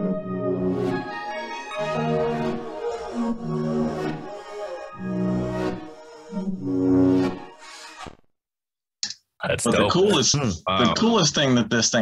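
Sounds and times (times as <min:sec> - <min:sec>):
looping chord phrases: 0:00.0 - 0:07.2.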